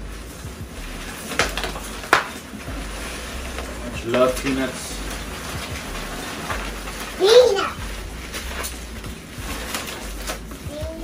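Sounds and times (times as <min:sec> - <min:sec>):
foam packing peanuts rustling: 0:00.0 - 0:11.0.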